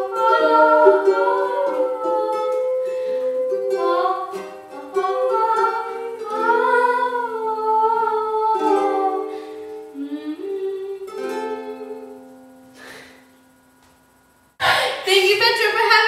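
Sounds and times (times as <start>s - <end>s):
woman singing wordlessly: 0.0s - 12.3s
ukulele strummed and plucked: 0.0s - 13.0s.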